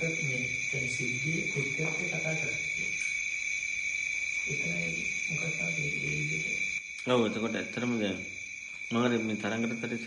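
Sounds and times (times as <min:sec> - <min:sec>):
high-pitched electrical whine: 0:00.0 - 0:10.0.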